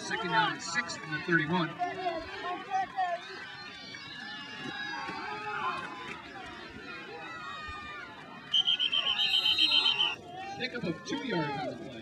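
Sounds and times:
crowd chattering: 0:00.0 - 0:12.0
referee's whistle trilling: 0:08.5 - 0:10.2.

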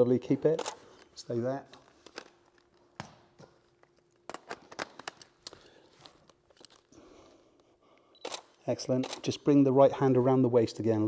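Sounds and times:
camera handling rustles: 0:03.8 - 0:06.9
camera clicks: 0:08.2 - 0:09.3.

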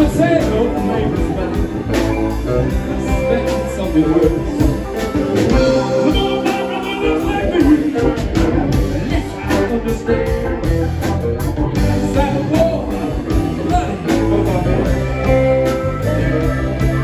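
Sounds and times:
electric guitars: 0:00.0 - 0:17.0
steady drum beat: 0:00.0 - 0:17.0.

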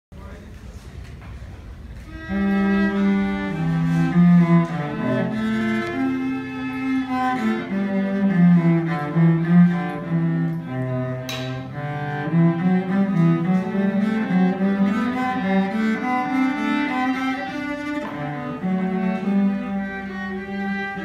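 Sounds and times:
cello bowing slow melody: 0:02.0 - 0:21.0
higher bowed string instrument: 0:02.0 - 0:21.0.

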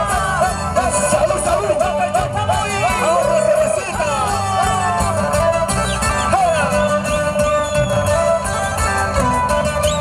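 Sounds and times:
strummed acoustic guitars: 0:00.0 - 0:10.0.

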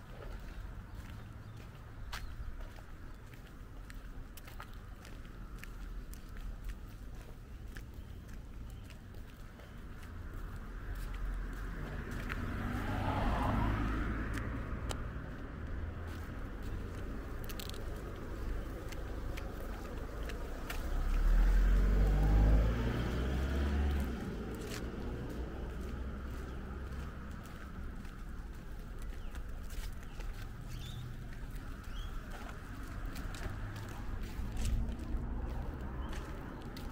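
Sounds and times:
cars passing: 0:00.0 - 0:36.9
footsteps on paving: 0:00.0 - 0:36.9.

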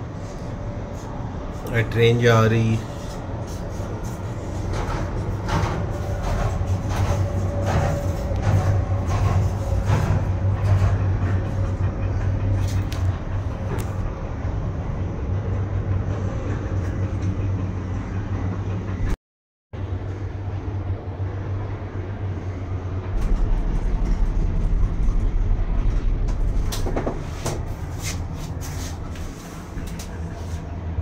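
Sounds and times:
cable car cabin hum: 0:00.0 - 0:19.2, 0:19.8 - 0:31.0
rhythmic clattering knocks: 0:04.1 - 0:14.2, 0:22.9 - 0:28.6.

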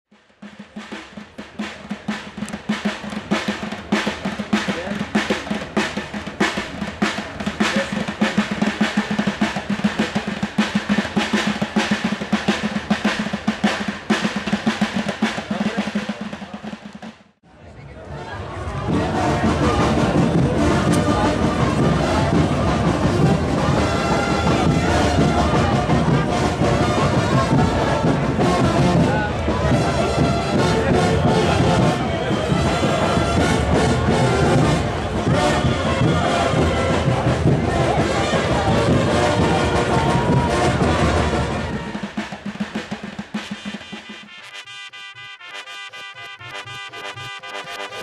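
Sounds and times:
brass band playing: 0:18.8 - 0:48.0
hand drum played fast: 0:19.0 - 0:44.6.

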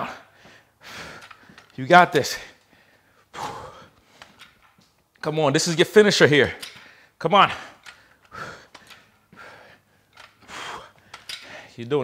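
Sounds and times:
man breathing hard: 0:00.1 - 0:04.5, 0:06.7 - 0:11.8.

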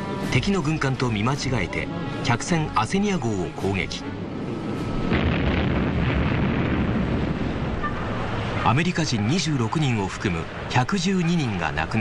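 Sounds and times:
deep explosion rumble: 0:05.0 - 0:08.0.

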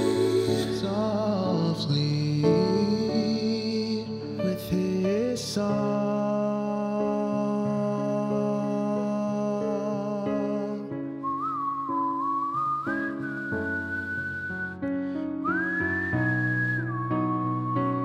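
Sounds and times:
sustained backing chords: 0:00.0 - 0:02.6
whistled melody: 0:00.0 - 0:06.1, 0:09.9 - 0:18.0.

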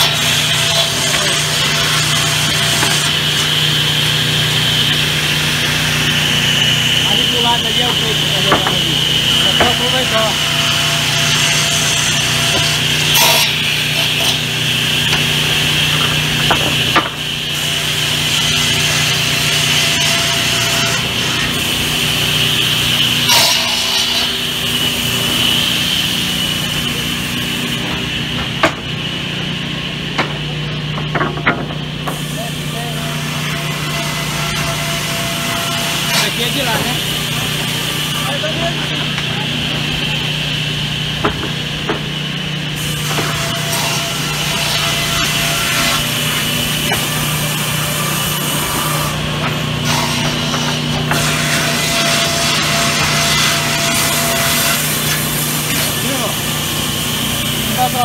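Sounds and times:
circular saws whining: 0:00.0 - 0:58.0.

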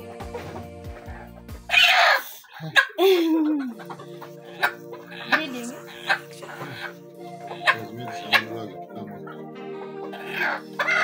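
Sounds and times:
background music with held tones: 0:00.0 - 0:11.0
hen squawking: 0:00.9 - 0:03.0, 0:03.6 - 0:11.0.

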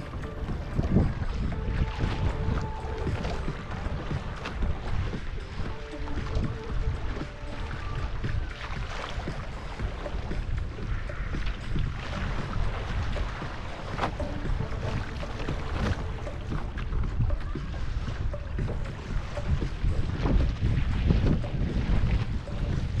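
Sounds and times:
water rushing along canoe hull: 0:00.0 - 0:23.0
water splashes: 0:00.0 - 0:23.0
wind buffeting microphone: 0:00.0 - 0:23.0.

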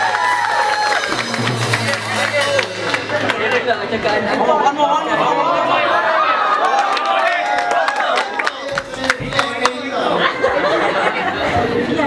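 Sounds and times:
people chattering: 0:01.3 - 0:12.0.

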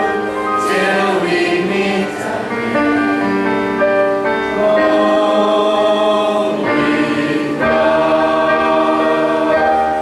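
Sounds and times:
congregation singing a hymn: 0:00.0 - 0:10.0.

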